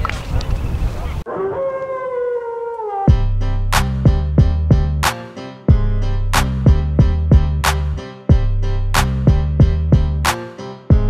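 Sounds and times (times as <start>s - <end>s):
outdoor pitch-side sound: 0.0s - 11.0s.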